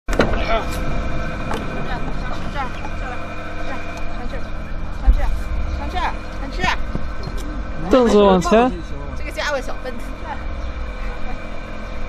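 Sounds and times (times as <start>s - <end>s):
voices talking: 0.2s - 12.0s
low thump: 6.9s - 7.4s.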